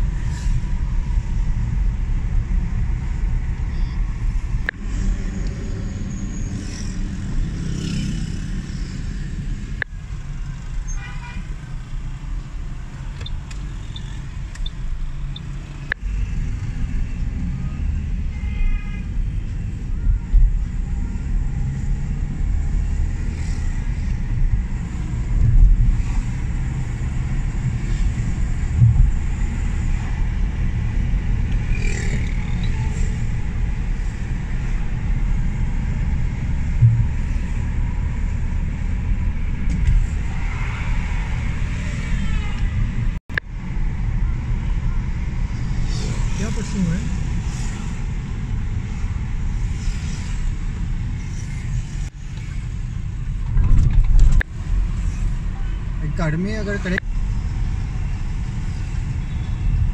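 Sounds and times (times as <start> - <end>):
car interior rumble: 23.7 - 31.8, 32.4 - 45.8.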